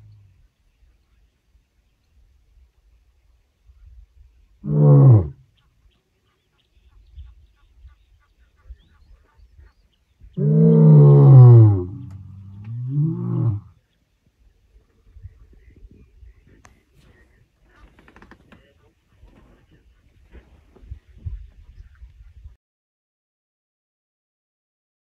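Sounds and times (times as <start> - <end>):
lion roaring: 4.6 - 5.4, 10.4 - 13.7.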